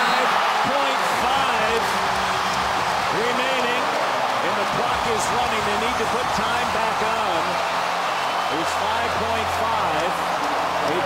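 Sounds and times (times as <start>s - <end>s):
man commentating: 0.0s - 2.0s, 3.1s - 7.6s, 8.5s - 11.0s
loud arena crowd: 0.0s - 11.0s.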